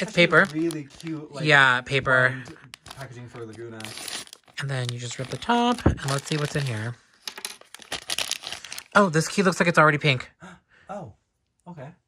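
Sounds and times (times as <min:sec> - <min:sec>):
paper bag ripping and crinkling: 0:00.0 - 0:01.2, 0:02.8 - 0:09.0.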